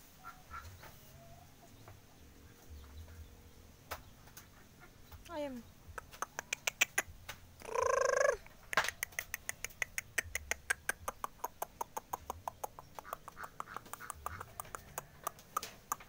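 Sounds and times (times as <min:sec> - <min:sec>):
animal call: 0:06.1 - 0:08.5
rapid sharp clicks: 0:08.7 - 0:16.0.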